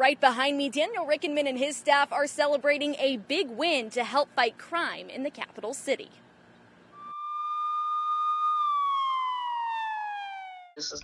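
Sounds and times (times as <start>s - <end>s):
police siren wailing: 7.0s - 11.0s.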